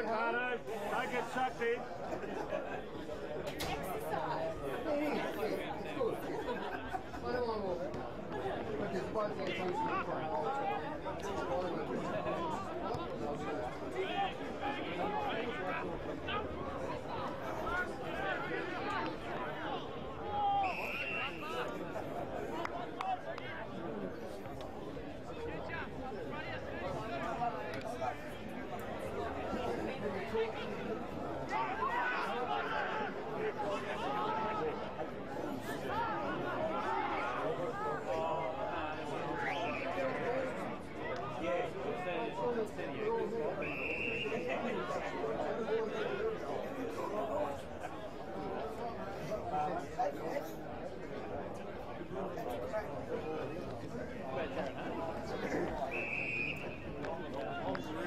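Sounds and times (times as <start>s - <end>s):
crowd of voices chatting: 0.0s - 58.0s.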